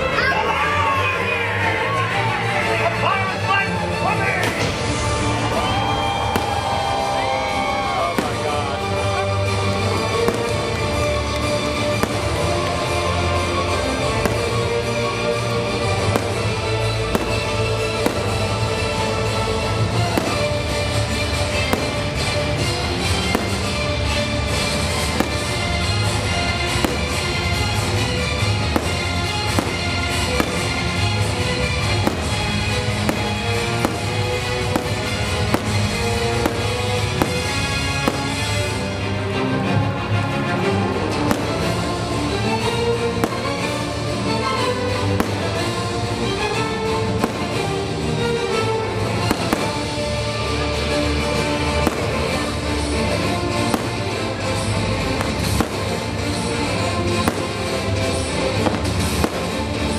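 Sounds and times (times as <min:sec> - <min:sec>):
show music: 0:00.0 - 0:59.9
fireworks bursting: 0:04.4 - 0:39.3, 0:40.6 - 0:59.9.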